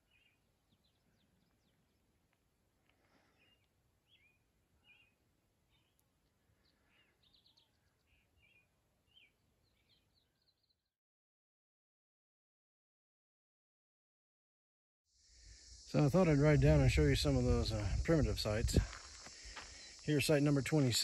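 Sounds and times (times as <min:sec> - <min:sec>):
bird chirps: 0:00.0 - 0:02.2, 0:03.3 - 0:10.8
faint low outdoor hiss: 0:15.2 - 0:21.0.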